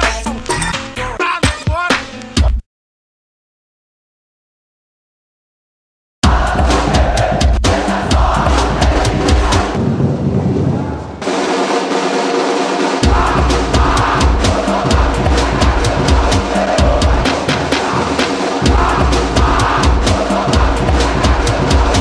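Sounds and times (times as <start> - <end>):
bass drums: 0.0 - 2.6, 6.2 - 10.1, 13.0 - 22.0
snare drums: 0.0 - 2.6, 6.2 - 9.8, 11.2 - 22.0.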